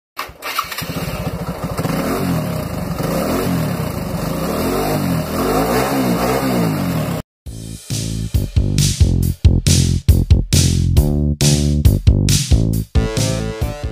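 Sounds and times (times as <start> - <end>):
motorcycle electric starter cranking: 0.2 - 4.4
motorcycle engine revving: 0.2 - 7.2.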